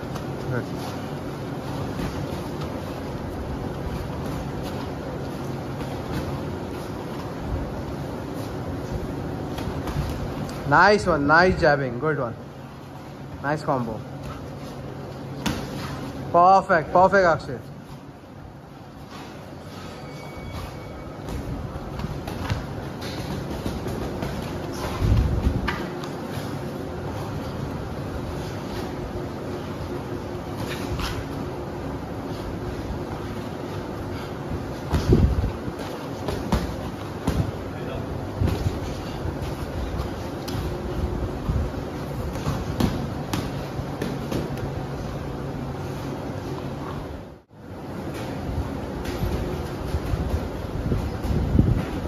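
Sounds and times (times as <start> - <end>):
steady rushing background noise: 0.0 - 52.0
boxing gloves thudding: 34.8 - 37.7, 41.6 - 44.8.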